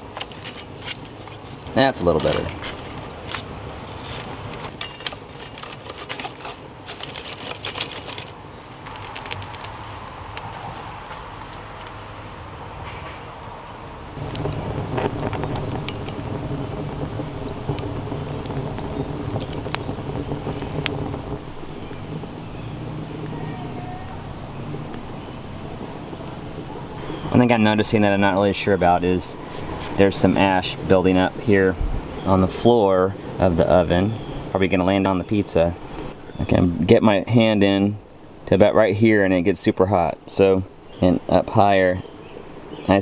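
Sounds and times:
wood fire crackling: 0.0 - 43.0
sticks clattering: 2.2 - 9.7
steady low drone: 14.1 - 28.4.

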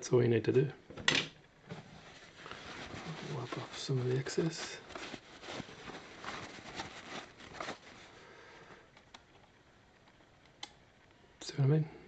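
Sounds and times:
paper towel rustling: 1.7 - 8.7.

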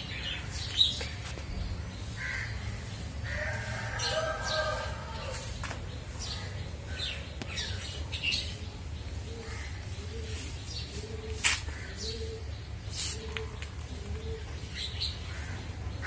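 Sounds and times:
birds chirping: 0.0 - 16.0.

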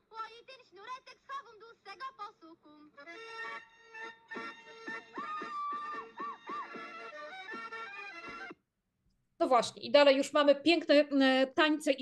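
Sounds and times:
folk dance music: 3.1 - 8.6.

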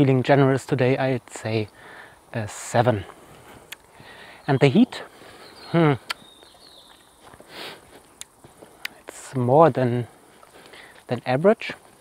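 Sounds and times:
short breathy hiss: 1.7 - 2.3, 3.1 - 6.1, 7.4 - 9.1
faint sharp clicks: 8.1 - 9.1.

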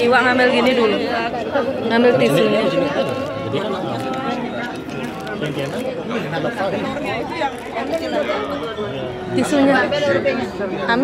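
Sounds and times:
overlapping group chatter: 0.0 - 11.0.

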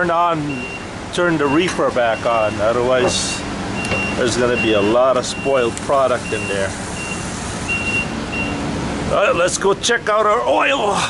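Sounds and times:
short high beeps: 6.3 - 8.6.

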